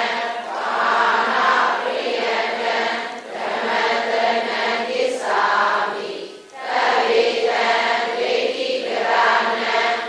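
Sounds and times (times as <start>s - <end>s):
voices chanting in unison: 0.0s - 10.0s.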